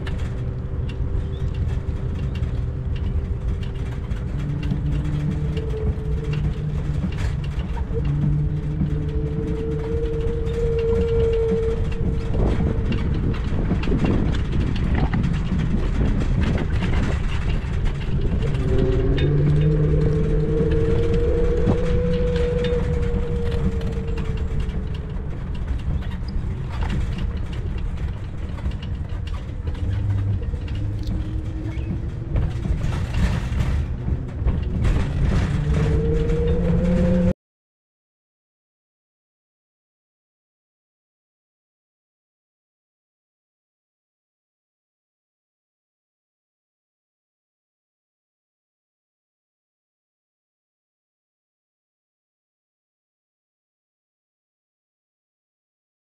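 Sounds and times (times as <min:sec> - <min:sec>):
low hum rising and falling: 0:00.0 - 0:37.4
wind and ride rumble: 0:00.0 - 0:37.4.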